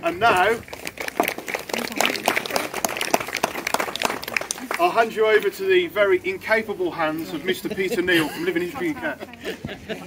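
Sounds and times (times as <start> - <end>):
audience clapping: 0.3 - 5.5.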